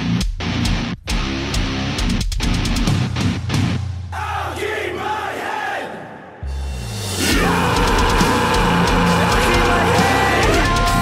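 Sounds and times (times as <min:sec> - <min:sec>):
voices shouting together: 0:04.1 - 0:06.4, 0:07.2 - 0:11.0.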